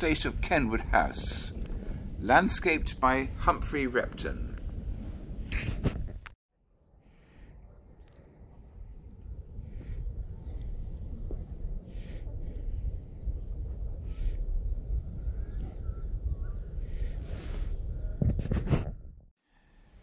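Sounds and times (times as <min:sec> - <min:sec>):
wind rumbling on microphone: 0:00.0 - 0:06.4, 0:07.3 - 0:19.2.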